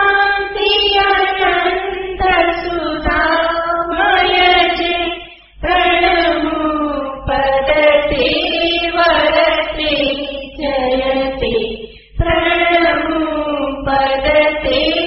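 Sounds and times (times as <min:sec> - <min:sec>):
voices chanting: 0:00.0 - 0:15.0.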